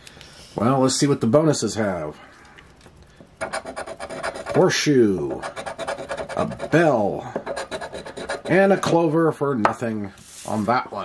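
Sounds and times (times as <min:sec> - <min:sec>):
coin scraping scratch card: 0:03.4 - 0:04.7, 0:05.4 - 0:06.8, 0:07.4 - 0:08.8.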